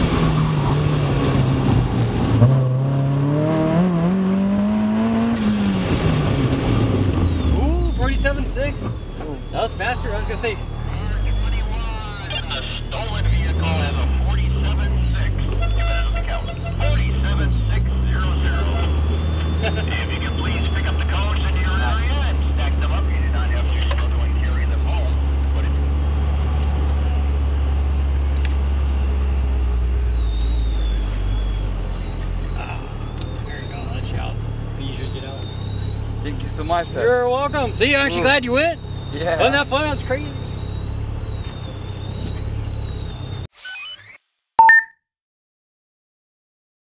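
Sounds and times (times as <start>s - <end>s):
car engine revving: 0.0s - 42.8s.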